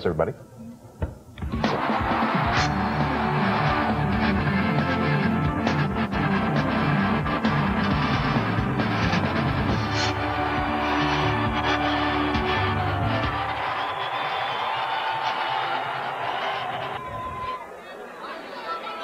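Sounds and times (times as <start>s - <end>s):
news theme music with bass beat: 1.4s - 13.7s.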